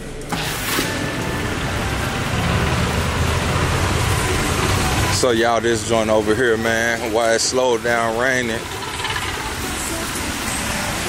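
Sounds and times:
low traffic rumble: 0.9s - 11.0s.

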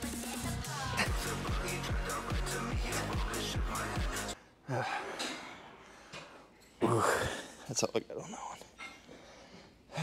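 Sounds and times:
electronic backing music: 0.0s - 4.4s.

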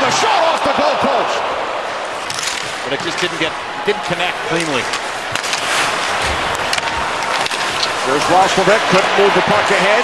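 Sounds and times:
arena crowd noise: 0.0s - 10.0s
hockey sticks and puck clacking: 2.0s - 10.0s.

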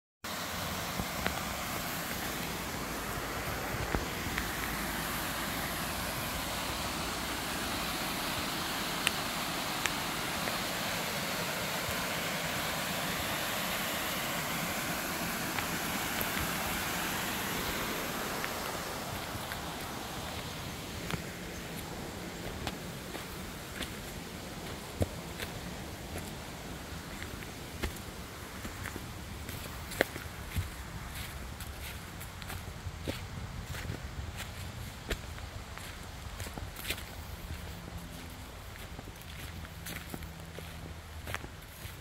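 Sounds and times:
waterfall rushing over rocks: 0.3s - 32.9s
footsteps on leafy trail: 0.6s - 42.0s.

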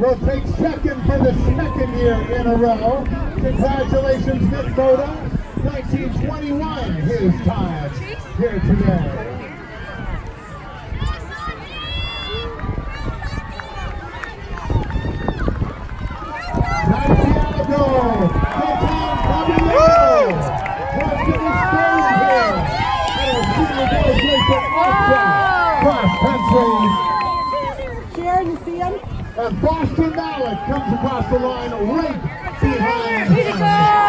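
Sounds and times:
crowd shouting and cheering: 0.0s - 34.0s.

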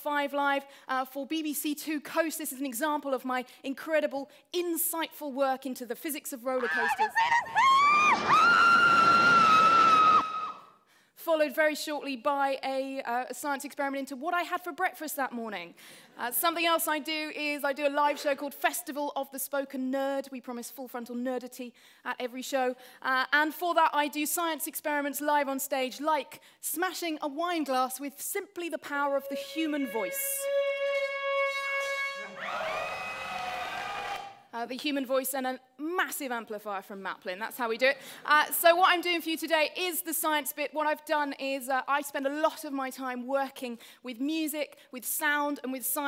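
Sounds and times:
woman screaming: 6.6s - 10.7s, 30.5s - 34.4s
people shouting: 32.1s - 34.4s.

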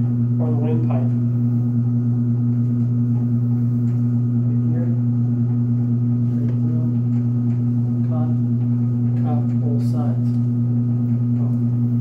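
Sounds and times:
electrical hum with higher tone: 0.0s - 12.0s.

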